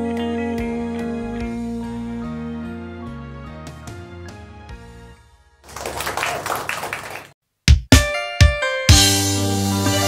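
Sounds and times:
audience applauding: 0:05.7 - 0:07.4.

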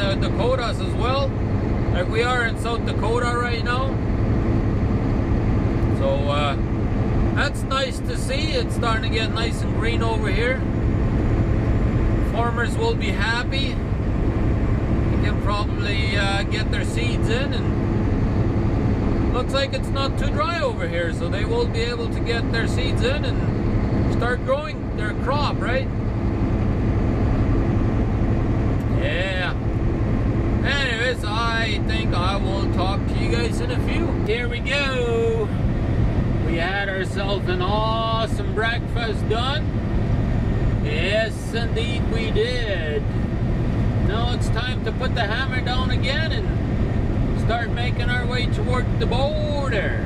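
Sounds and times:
diesel truck engine drone: 0:00.0 - 0:50.0
road and tyre noise: 0:00.0 - 0:50.0.

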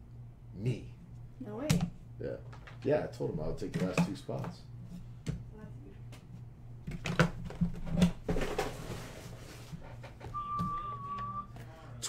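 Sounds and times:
steady high tone: 0:10.3 - 0:11.9.

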